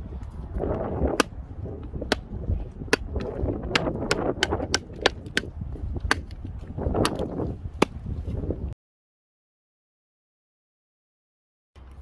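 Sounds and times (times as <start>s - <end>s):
knife chopping branch on wood: 2.0s - 6.4s, 7.0s - 8.0s.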